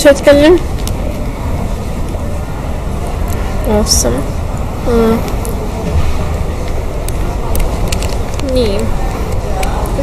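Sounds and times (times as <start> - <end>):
low rumble and hiss: 0.0 - 10.0.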